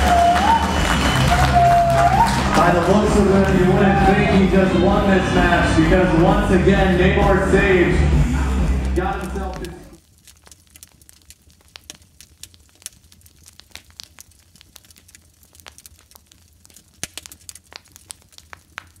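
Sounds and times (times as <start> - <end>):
music: 0.0 - 10.0
person speaking: 2.6 - 10.0
wood fire crackling and popping: 8.8 - 19.0.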